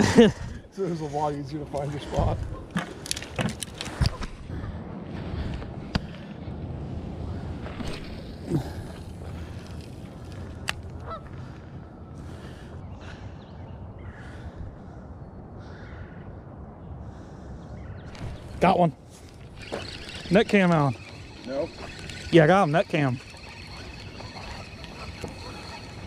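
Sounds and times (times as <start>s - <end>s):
fishing reel clicks: 19.6s - 26.0s
geese honking: 19.6s - 26.0s.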